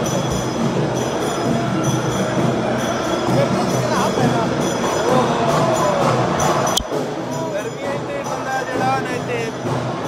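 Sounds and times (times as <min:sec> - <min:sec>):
din of indoor crowd: 0:00.0 - 0:10.0
music: 0:00.0 - 0:10.0.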